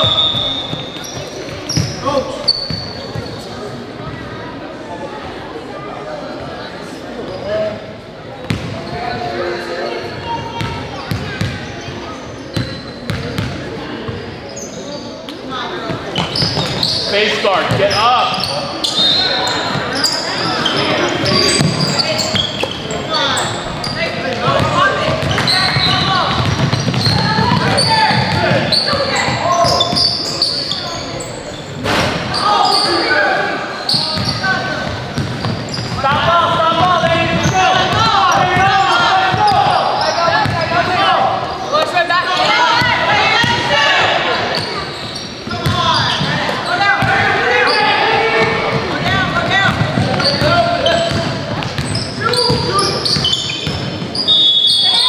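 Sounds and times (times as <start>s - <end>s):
basketball bouncing on court: 0.0s - 3.4s, 8.4s - 8.8s, 10.6s - 11.8s, 12.6s - 13.6s, 17.7s - 18.4s, 20.6s - 22.8s, 23.6s - 30.2s, 33.9s - 40.7s, 44.6s - 47.3s, 48.4s - 54.2s
voices calling out: 14.5s - 55.0s.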